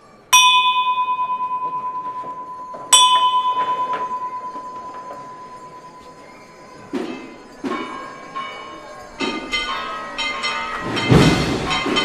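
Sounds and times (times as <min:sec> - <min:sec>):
brass bell ringing: 0:00.4 - 0:06.7.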